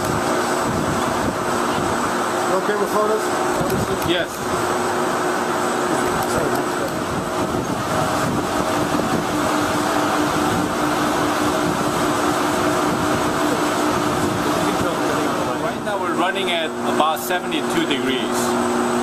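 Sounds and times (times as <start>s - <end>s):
server cooling fans rushing: 0.0s - 19.0s.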